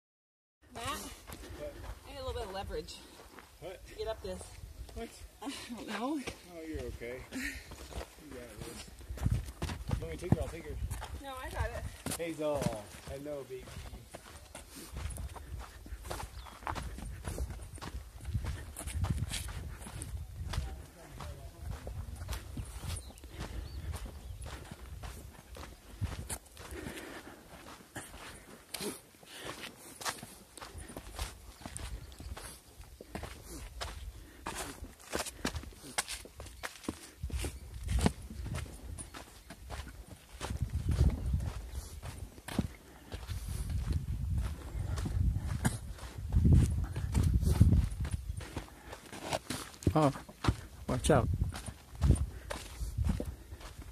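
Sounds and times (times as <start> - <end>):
footsteps crunching on gravel: 5.9 - 53.9.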